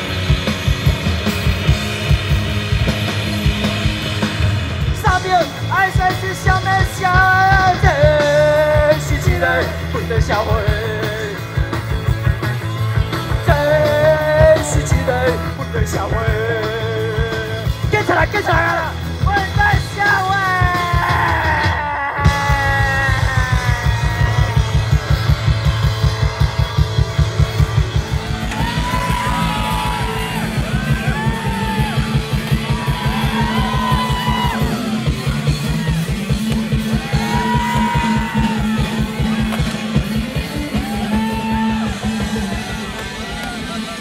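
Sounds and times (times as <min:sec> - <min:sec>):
punk rock band playing: 0:00.0 - 0:44.0
singer yelling: 0:13.4 - 0:25.3, 0:28.5 - 0:39.5.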